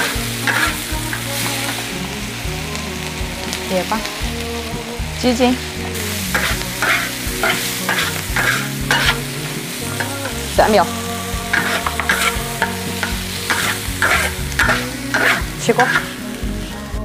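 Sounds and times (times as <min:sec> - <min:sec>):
metal spatula scraping wok: 0:00.0 - 0:02.2, 0:05.8 - 0:10.9, 0:11.5 - 0:16.5
hot oil sizzling: 0:00.0 - 0:17.0.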